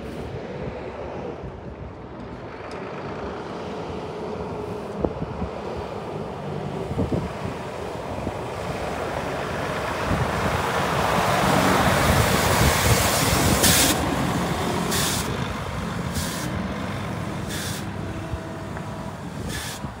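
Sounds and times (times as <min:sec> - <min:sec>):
truck diesel engine passing: 0:00.0 - 0:20.0
air brake hisses: 0:13.6 - 0:14.0, 0:14.9 - 0:15.3, 0:16.1 - 0:16.5, 0:17.5 - 0:17.9, 0:19.5 - 0:19.9.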